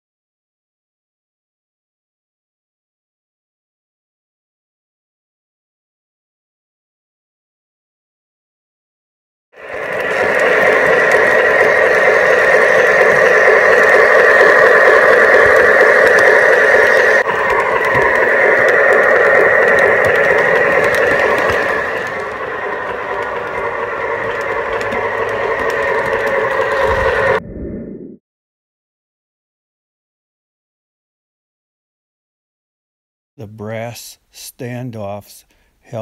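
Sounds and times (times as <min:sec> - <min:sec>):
model locomotive rattling on track: 0:09.6 - 0:27.4.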